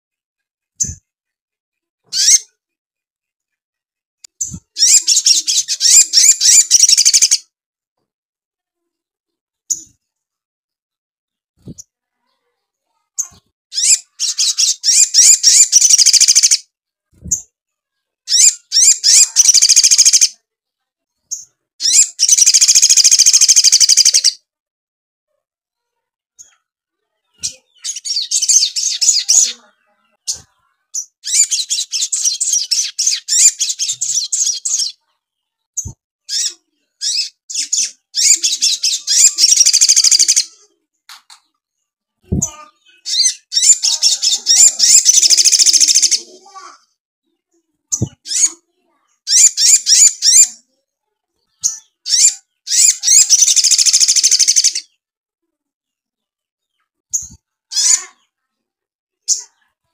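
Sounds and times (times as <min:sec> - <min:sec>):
bird twittering song: 0:02.1 - 0:02.6, 0:04.3 - 0:07.4, 0:13.2 - 0:16.6, 0:18.3 - 0:20.4, 0:21.3 - 0:24.4, 0:27.2 - 0:35.0, 0:35.8 - 0:40.5, 0:42.3 - 0:46.7, 0:51.5 - 0:55.0.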